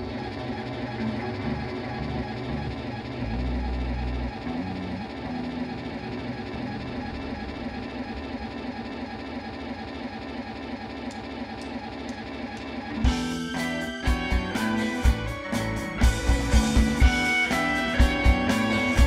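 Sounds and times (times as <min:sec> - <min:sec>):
droning electric guitars: 0:00.0 - 0:09.2, 0:11.1 - 0:19.0.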